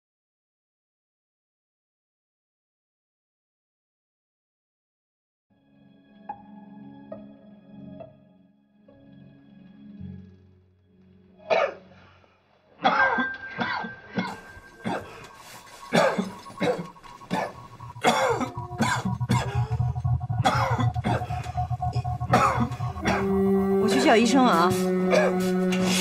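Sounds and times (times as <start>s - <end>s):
soft dramatic music: 5.5s - 26.0s
child coughing and choking: 11.5s - 11.8s, 12.8s - 15.3s, 15.9s - 19.8s, 20.4s - 21.4s, 22.3s - 23.4s, 25.1s - 25.4s.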